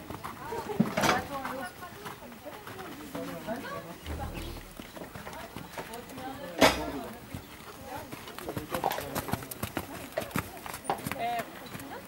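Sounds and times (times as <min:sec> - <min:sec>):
people talking: 0:03.5 - 0:08.0
short loud burst of noise: 0:04.1 - 0:05.4.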